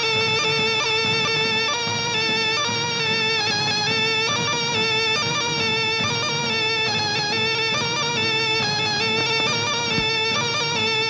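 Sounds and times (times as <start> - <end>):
film score held notes: 0.0 - 11.0.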